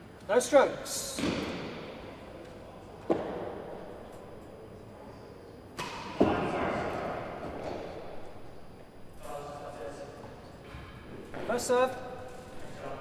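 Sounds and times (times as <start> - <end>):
racket hitting ball crack: 1.2 - 2.0, 5.8 - 6.3.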